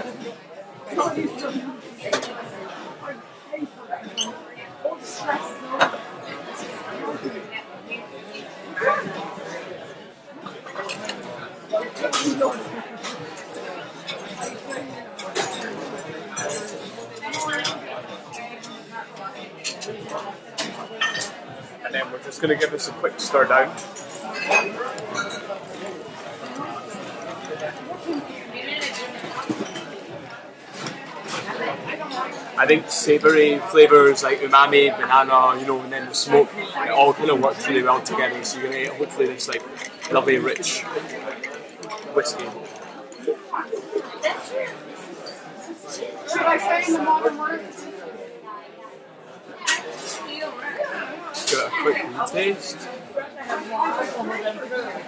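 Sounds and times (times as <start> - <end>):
background chatter of voices: 0.0 - 55.0
spoon stirring ice in metal tin: 38.1 - 42.8.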